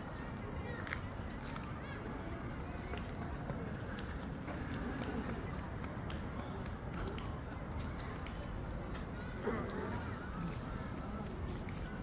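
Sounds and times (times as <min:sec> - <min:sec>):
faint voices talking: 0:00.0 - 0:12.0.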